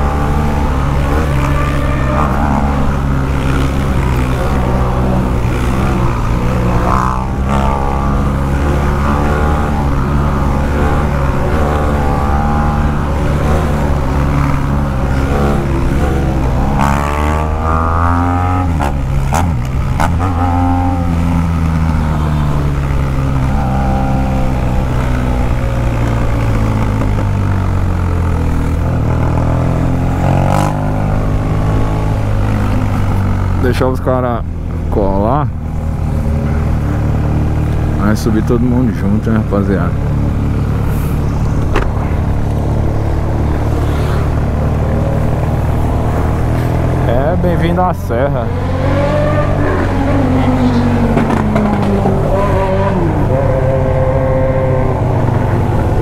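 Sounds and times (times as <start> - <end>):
motorcycle engine accelerating: 0.0 - 56.0.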